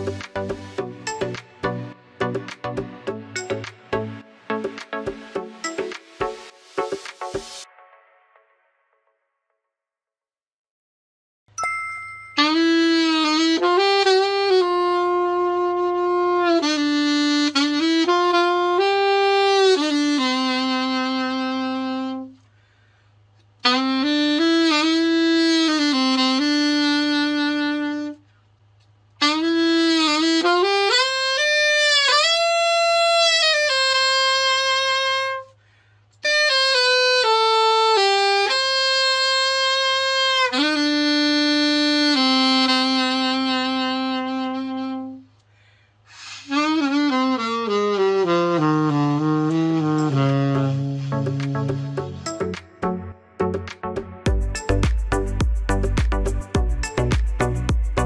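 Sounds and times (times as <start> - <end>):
alto saxophone melody: 0.0 - 6.8, 12.4 - 22.6, 23.6 - 28.3, 29.2 - 45.4, 46.2 - 58.0.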